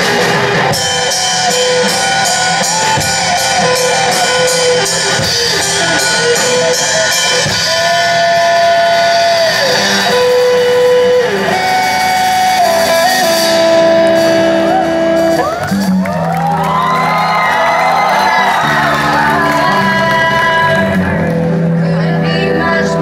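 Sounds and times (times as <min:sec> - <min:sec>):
live band with guitars: 0:00.0 - 0:23.0
steady low bass line: 0:00.0 - 0:23.0.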